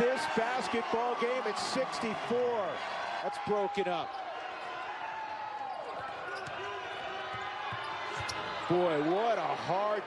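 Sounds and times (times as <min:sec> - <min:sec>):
indoor arena background noise: 0:00.0 - 0:10.0
sneaker squeak: 0:05.7 - 0:08.7.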